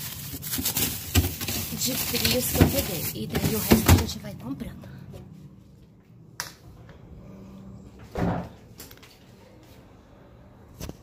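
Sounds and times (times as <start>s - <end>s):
freezer door thud: 0.4s - 4.2s.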